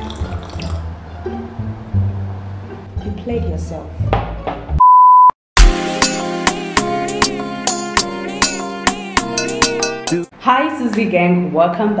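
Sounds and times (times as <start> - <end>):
electronic beep: 4.8 - 5.3
upbeat music: 5.6 - 10.3.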